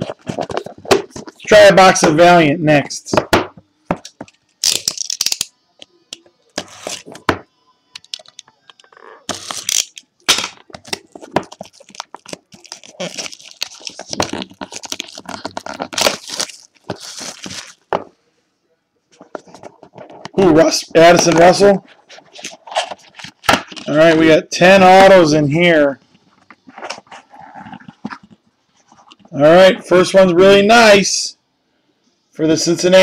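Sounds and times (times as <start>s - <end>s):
plastic wrap crackling and tearing: 4.3s - 5.5s, 8.8s - 17.9s.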